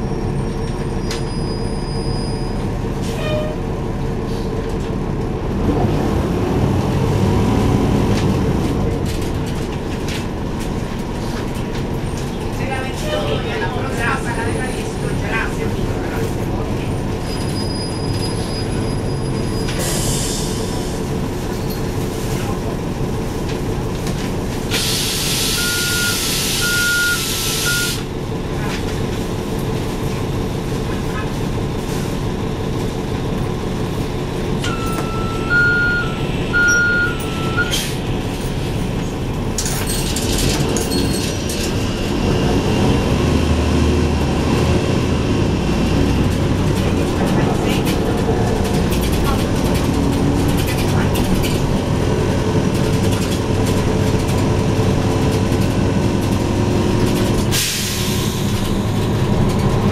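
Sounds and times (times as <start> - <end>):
bus engine pulling away: 0.0 - 59.9.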